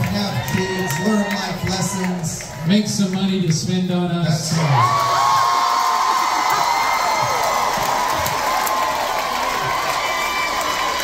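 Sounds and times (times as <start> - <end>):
audience cheering and screaming: 0.0 - 2.6, 4.4 - 11.0.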